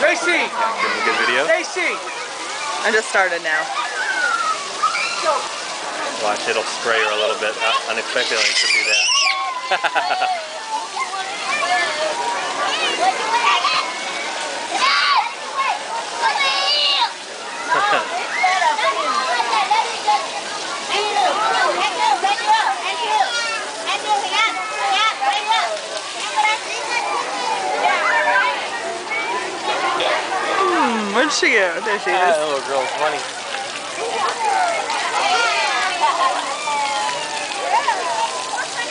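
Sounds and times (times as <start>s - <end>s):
children talking and calling out: 0.0s - 38.9s
water jets spraying and splashing: 0.0s - 38.9s.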